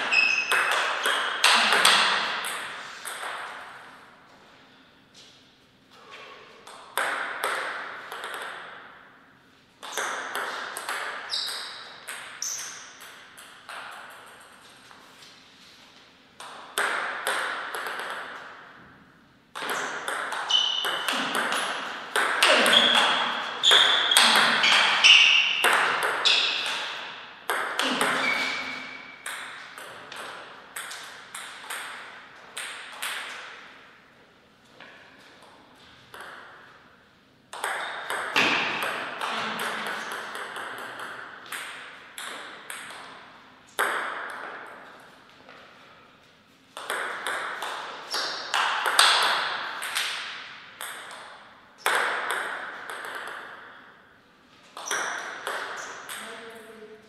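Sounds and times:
ping pong ball hitting paddles and table: 0:00.0 - 0:04.2, 0:06.6 - 0:09.2, 0:09.8 - 0:15.0, 0:16.4 - 0:34.0, 0:34.8 - 0:45.2, 0:46.7 - 0:56.8.

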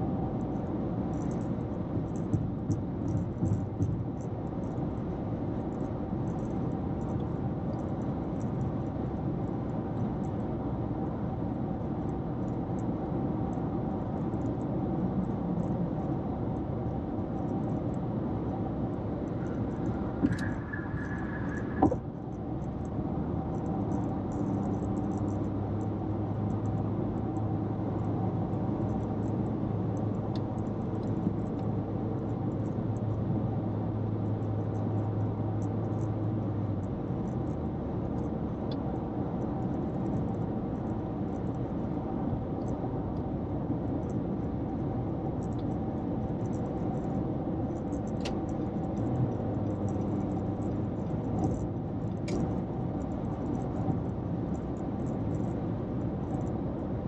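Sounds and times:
low steady hum: 0:00.0 - 0:57.0
road and tyre noise: 0:00.0 - 0:57.0.

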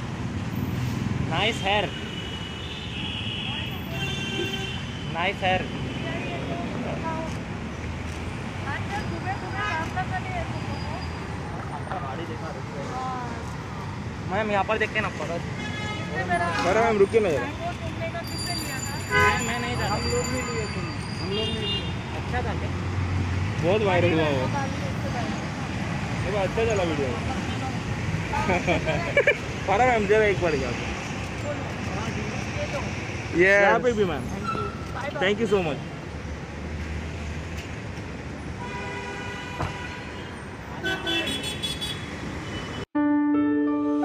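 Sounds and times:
street traffic engine hum: 0:00.0 - 0:43.0
vehicle horns: 0:01.5 - 0:06.6, 0:15.5 - 0:17.6, 0:18.9 - 0:22.2, 0:38.6 - 0:42.9
voices: 0:08.6 - 0:13.6.

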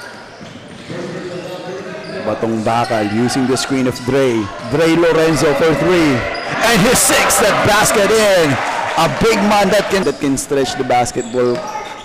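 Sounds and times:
gym hall background noise: 0:00.0 - 0:12.0
commentator's wordless voice: 0:02.3 - 0:11.6.

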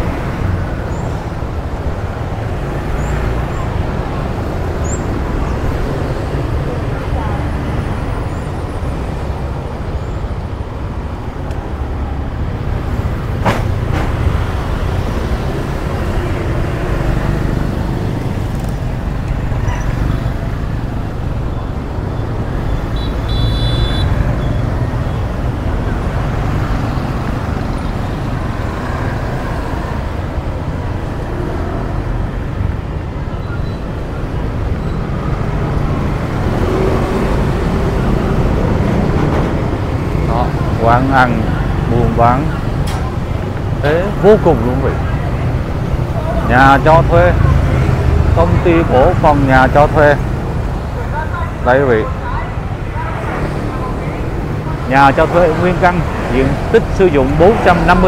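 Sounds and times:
motorbike and scooter traffic: 0:00.0 - 0:58.0.

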